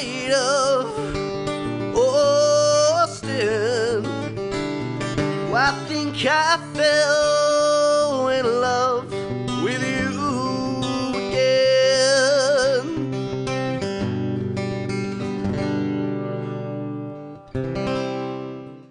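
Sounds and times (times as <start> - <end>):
man singing with vibrato: 0.0 - 13.9
strummed acoustic guitar: 0.0 - 18.9.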